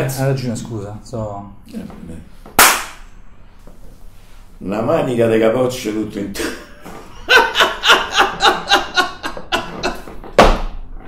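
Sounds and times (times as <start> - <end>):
elderly man laughing heartily: 6.4 - 10.2.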